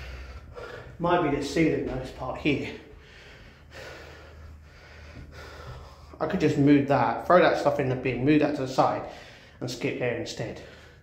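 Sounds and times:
man breathing: 0:00.0 - 0:01.1, 0:02.5 - 0:06.2, 0:09.0 - 0:09.6, 0:10.6 - 0:11.0.

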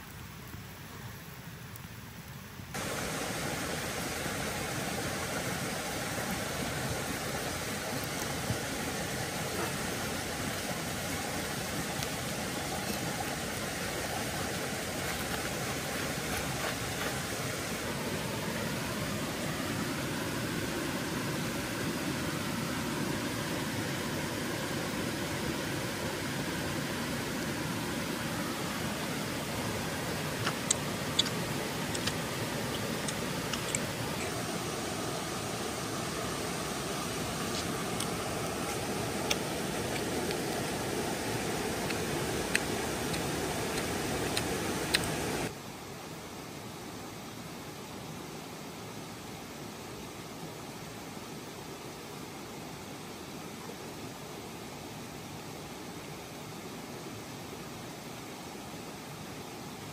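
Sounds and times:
stream rushing: 0:02.6 - 0:59.9.

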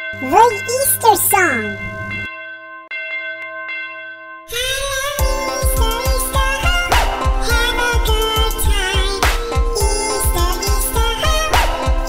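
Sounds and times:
bells ringing: 0:00.0 - 0:06.8.

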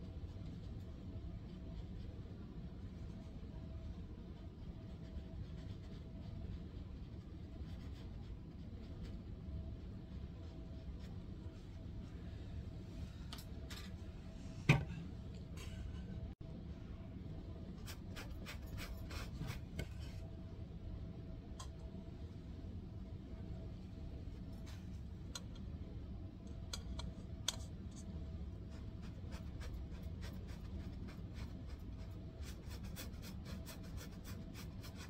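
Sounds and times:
low room hum: 0:00.0 - 0:35.0
paintbrush scratching on canvas: 0:17.8 - 0:20.3, 0:28.6 - 0:35.0.

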